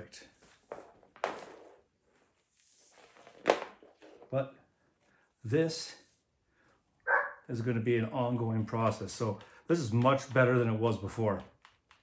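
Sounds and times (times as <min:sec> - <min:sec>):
faint rustle of cord: 0:00.2 - 0:06.8.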